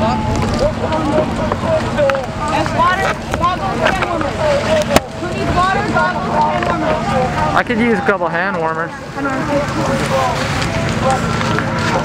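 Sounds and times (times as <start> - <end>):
low machine hum: 0.0 - 12.0
people talking at once: 0.0 - 12.0.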